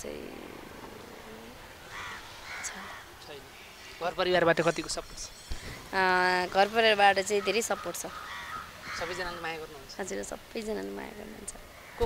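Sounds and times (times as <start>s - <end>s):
bird calling: 0.1s - 12.0s.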